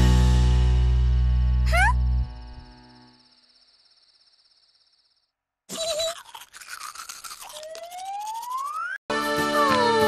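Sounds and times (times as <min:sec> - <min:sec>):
tooth-brushing scrub: 0:05.8 - 0:09.0.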